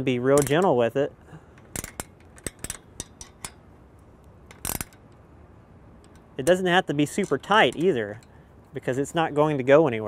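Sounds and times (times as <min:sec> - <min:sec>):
ratcheting wrench clicking: 0:00.0 - 0:00.8, 0:01.6 - 0:03.6, 0:04.5 - 0:05.2, 0:06.0 - 0:08.4.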